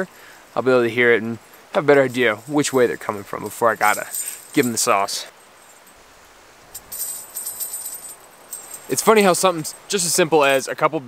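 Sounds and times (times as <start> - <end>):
bells jingling: 1.4 - 6.0, 6.7 - 10.8.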